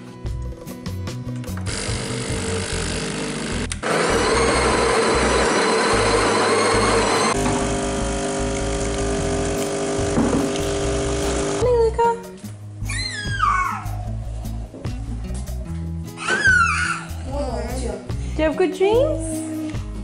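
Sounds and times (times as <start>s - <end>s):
espresso machine pump hum: 1.7s - 11.6s
espresso machine whirring: 1.7s - 11.6s
espresso pouring into a mug: 3.9s - 11.6s.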